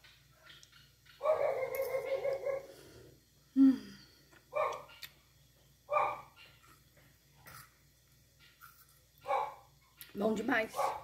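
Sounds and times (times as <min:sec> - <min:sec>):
dog barking: 0:01.2 - 0:02.7, 0:04.5 - 0:05.0, 0:05.9 - 0:06.5, 0:09.2 - 0:09.7, 0:10.8 - 0:11.0.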